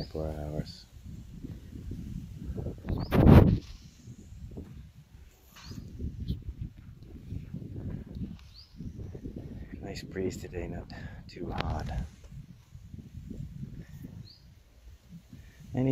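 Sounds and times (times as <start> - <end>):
wind buffeting microphone: 0.0 - 15.9.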